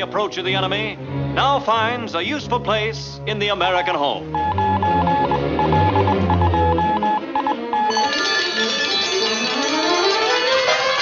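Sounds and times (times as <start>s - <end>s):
orchestral music: 0.0s - 11.0s
cartoon radar beeping: 4.4s - 8.2s.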